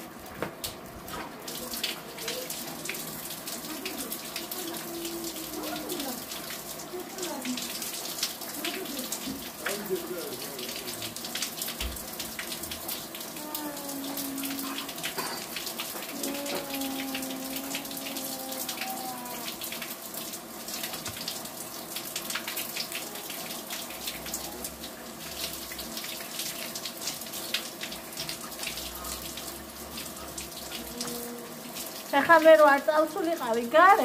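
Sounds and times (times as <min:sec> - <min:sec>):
water splashing into a basin: 0:00.0 - 0:34.0
hands rinsing a dish: 0:00.3 - 0:20.1.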